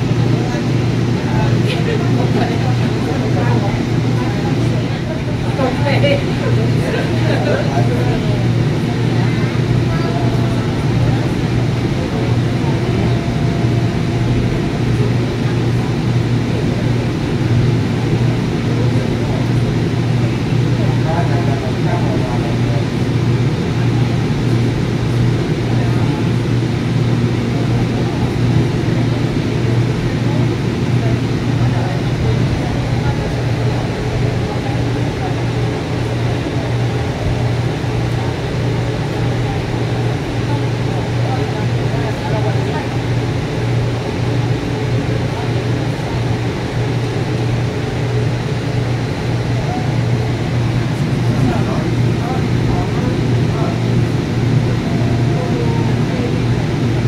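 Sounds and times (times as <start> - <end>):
faint passenger voices: 0.0 - 57.0
train rumbling along track: 0.0 - 57.0.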